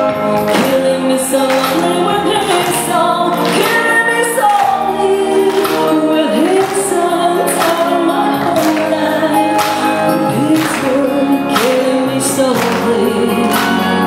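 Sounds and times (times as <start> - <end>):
backing music with steady beat: 0.0 - 14.0
woman singing into microphone: 0.0 - 14.0.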